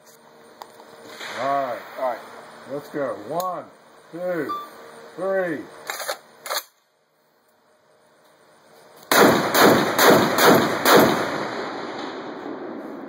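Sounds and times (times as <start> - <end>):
rifle shot: 9.1 - 13.0.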